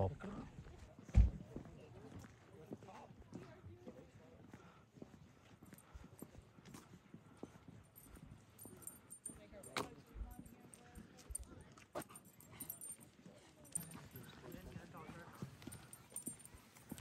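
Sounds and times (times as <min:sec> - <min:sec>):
distant people talking: 0:08.9 - 0:16.7.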